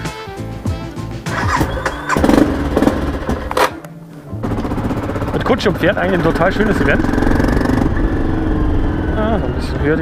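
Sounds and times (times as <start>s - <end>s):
background music: 0.0s - 10.0s
motorcycle engine starting and running: 1.2s - 10.0s.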